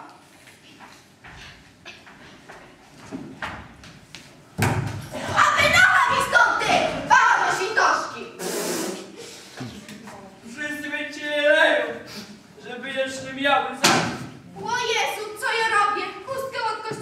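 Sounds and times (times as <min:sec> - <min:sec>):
high-pitched voices echoing: 0:05.2 - 0:10.7.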